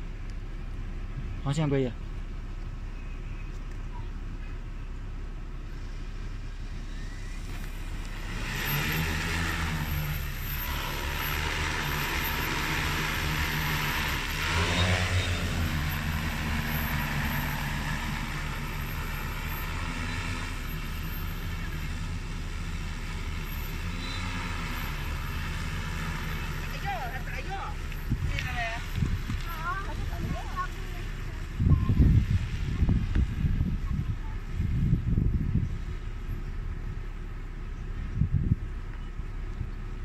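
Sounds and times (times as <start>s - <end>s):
drone rotors humming: 0.0s - 40.0s.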